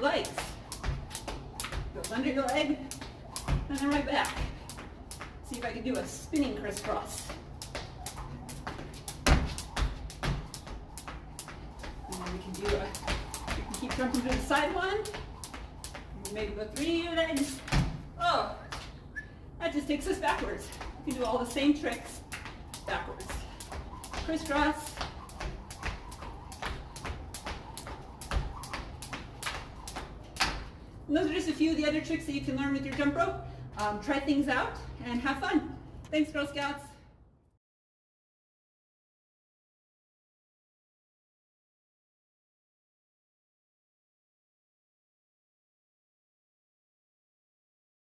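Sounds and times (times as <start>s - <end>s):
jump rope slapping concrete: 0.0s - 18.1s, 19.8s - 33.2s.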